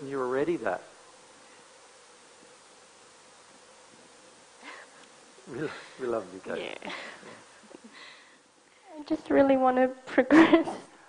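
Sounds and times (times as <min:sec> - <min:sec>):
thin steady buzzing hum: 0:00.0 - 0:11.0.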